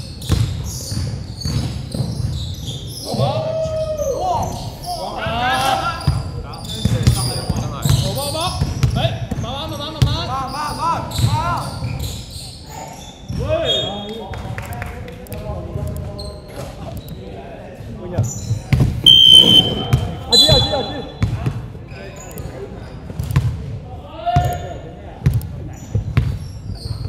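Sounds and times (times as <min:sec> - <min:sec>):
sneakers squeaking: 0:00.1 - 0:03.2, 0:06.0 - 0:09.4, 0:18.2 - 0:23.2
players calling out: 0:19.1 - 0:21.2.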